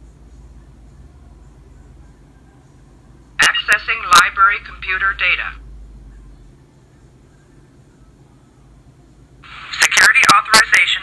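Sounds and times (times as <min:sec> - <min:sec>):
tinny computer sounds from speaker: 0:03.4 - 0:05.6, 0:09.4 - 0:11.0.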